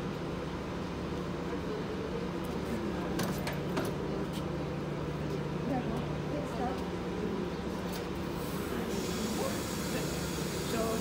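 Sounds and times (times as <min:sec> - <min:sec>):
laundry machines humming: 0:00.0 - 0:11.0.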